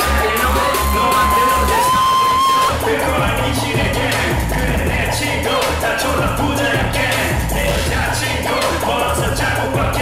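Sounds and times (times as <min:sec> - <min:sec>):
held high note: 0:00.0 - 0:02.8
heavy bass-driven beat: 0:00.0 - 0:10.0
live hip hop through pa: 0:00.0 - 0:10.0
person rapping: 0:00.0 - 0:10.0.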